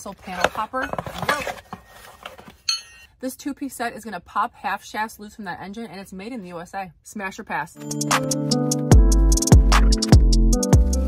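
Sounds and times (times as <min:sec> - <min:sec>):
cardboard box rustling: 0:00.1 - 0:02.6
ringing metal clink: 0:02.7 - 0:03.1.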